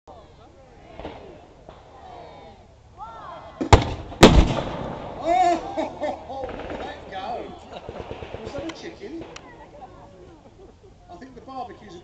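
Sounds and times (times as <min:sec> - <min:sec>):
gun firing loud bangs: 0:03.7 - 0:05.2, 0:06.4 - 0:08.6.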